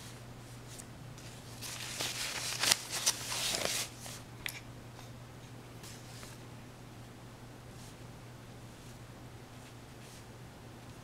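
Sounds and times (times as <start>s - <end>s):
paper crackling: 1.2s - 4.2s
paper rustling: 1.2s - 4.2s.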